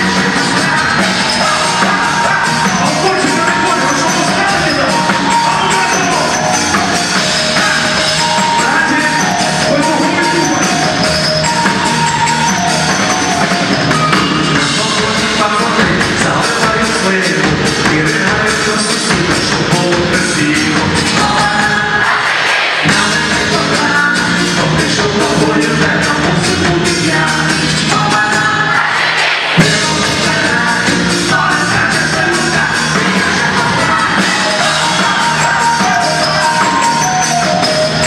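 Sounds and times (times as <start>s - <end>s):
pop-rock band through speakers: 0.0s - 38.0s
steady drum beat: 0.0s - 38.0s.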